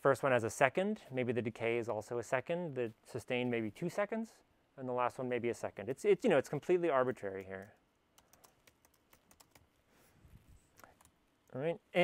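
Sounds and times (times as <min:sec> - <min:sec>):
computer keyboard keystrokes: 0:07.4 - 0:09.6.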